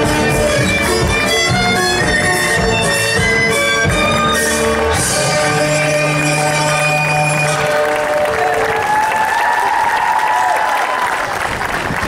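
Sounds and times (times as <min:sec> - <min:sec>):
folk dance music with drone: 0:00.0 - 0:10.6
audience applause: 0:07.0 - 0:12.0.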